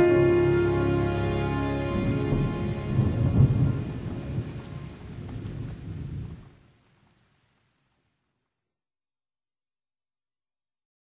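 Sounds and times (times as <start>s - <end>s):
instrumental held chord: 0.0s - 5.0s
rolling low thunder rumble: 0.0s - 6.8s
steady rain hiss: 0.0s - 8.6s.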